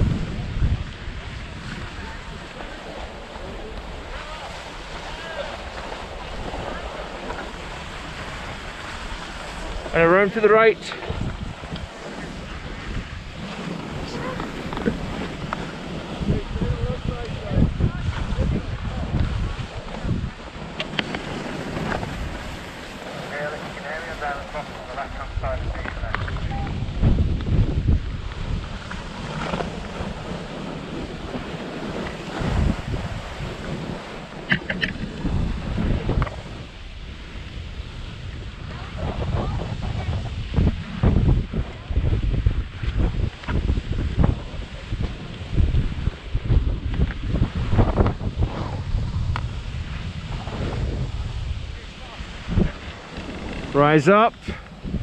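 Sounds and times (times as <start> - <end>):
skis sliding on snow: 0.0 - 55.0
wind buffeting microphone: 0.0 - 55.0.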